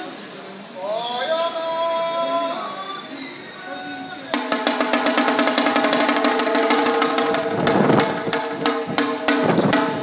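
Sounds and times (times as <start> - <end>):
rapid drum roll with sticks: 4.3 - 10.0.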